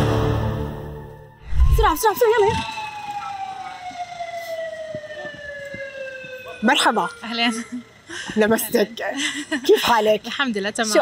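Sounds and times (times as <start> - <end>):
siren-like falling tone: 1.3 - 8.0.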